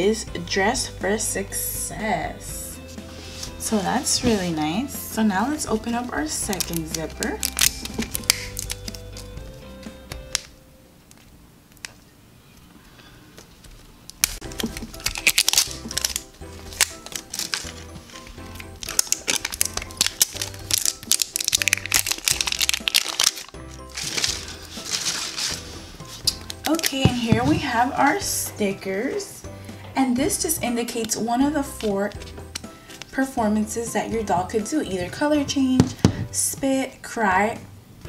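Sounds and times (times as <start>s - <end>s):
background music with steady beat: 0.0s - 11.0s, 14.2s - 38.0s
plastic wrap crinkling: 5.9s - 9.3s, 13.5s - 27.8s.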